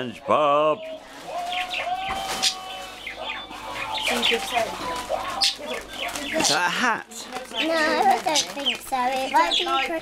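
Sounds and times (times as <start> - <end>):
voices talking: 0.0 - 10.0
wrapping paper crinkling: 1.0 - 10.0.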